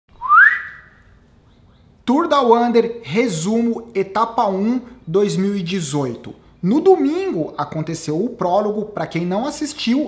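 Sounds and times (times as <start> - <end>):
rising whistle: 0.1 - 1.2.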